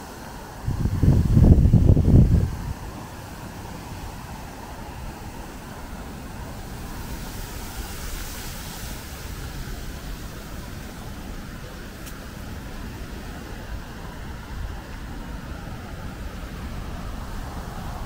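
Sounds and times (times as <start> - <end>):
wind buffeting microphone: 0.0 - 18.0
wind rushing through reeds: 0.0 - 18.0.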